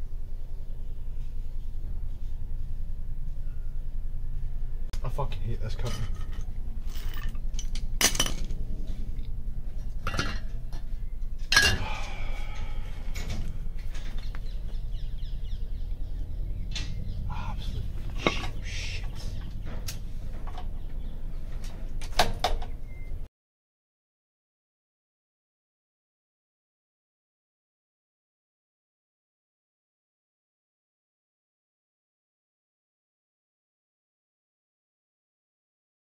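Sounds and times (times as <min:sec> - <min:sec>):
steady low hum: 0:00.0 - 0:23.3.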